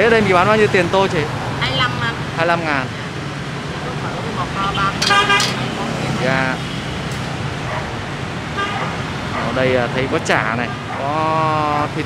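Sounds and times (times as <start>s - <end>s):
street traffic noise: 0.0s - 12.0s
voices nearby: 0.0s - 12.0s
vehicle horn: 4.8s - 5.6s.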